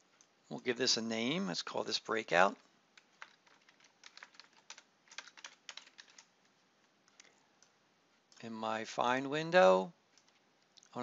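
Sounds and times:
keyboard typing: 3.0s - 6.3s, 10.2s - 10.4s.

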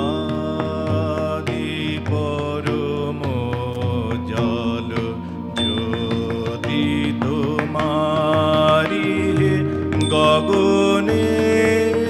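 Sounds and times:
keyboard: 0.0s - 12.0s
man singing into a microphone: 0.0s - 12.0s
tabla: 0.0s - 12.0s.

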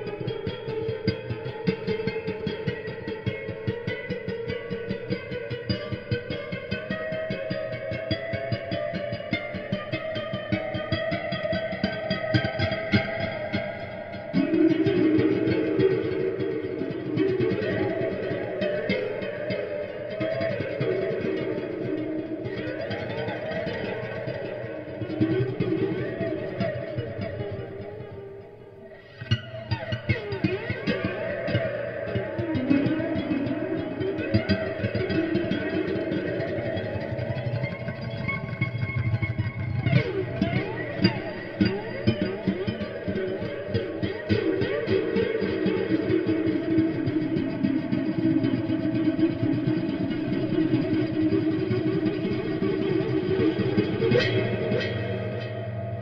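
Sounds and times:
slide guitar with heavy reverb: 0.0s - 56.0s.

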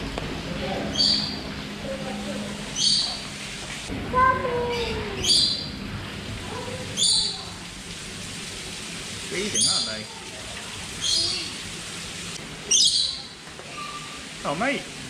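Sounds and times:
bird chirping: 0.9s - 1.4s.

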